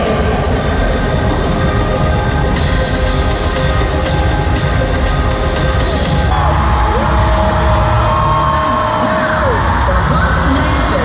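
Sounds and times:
music over stadium loudspeakers: 0:00.0 - 0:11.0
crowd cheering: 0:06.3 - 0:11.0.

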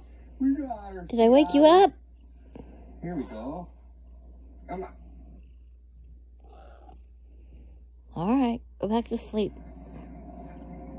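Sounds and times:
cat purring: 0:00.0 - 0:10.9.

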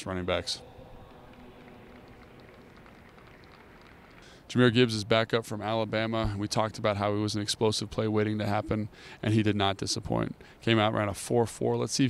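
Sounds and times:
low hum: 0:00.0 - 0:04.4.

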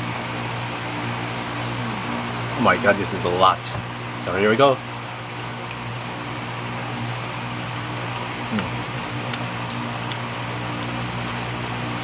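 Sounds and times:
electric fan hum: 0:00.0 - 0:12.0.

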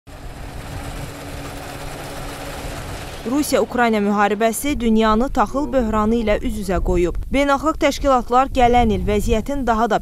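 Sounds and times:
combine harvester engine drone: 0:00.1 - 0:06.0.

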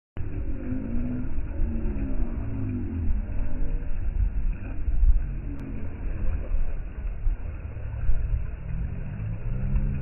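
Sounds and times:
wind buffeting microphone: 0:00.2 - 0:10.0.

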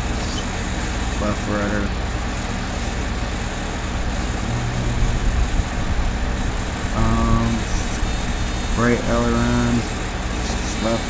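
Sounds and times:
background hum and hiss: 0:00.0 - 0:11.0.

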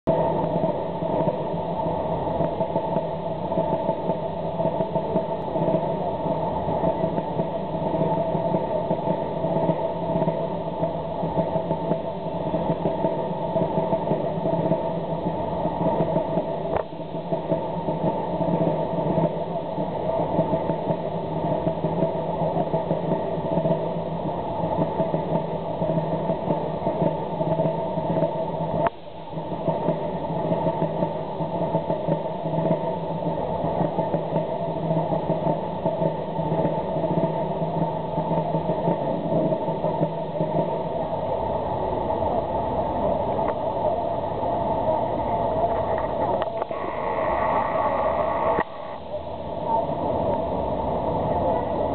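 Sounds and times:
road traffic drone: 0:45.0 - 0:49.0.

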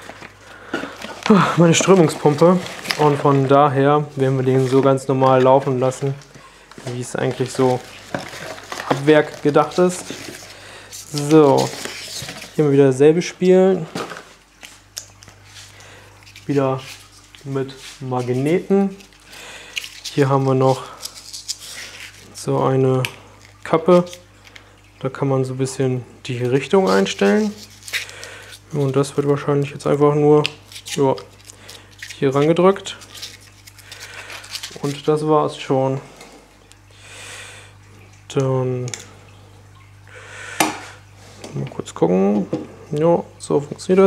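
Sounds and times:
packaging rustling: 0:00.0 - 0:12.7, 0:13.8 - 0:22.4, 0:26.6 - 0:29.4, 0:30.6 - 0:35.2
steady low hum: 0:00.0 - 0:44.0.

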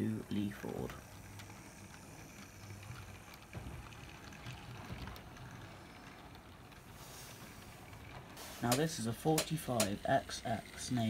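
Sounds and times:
model train motor humming: 0:00.0 - 0:11.0
wheels clicking on track: 0:00.0 - 0:11.0.

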